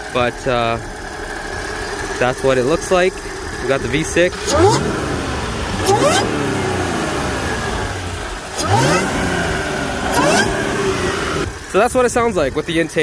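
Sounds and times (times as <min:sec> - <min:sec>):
car engine revving: 0:00.0 - 0:12.7.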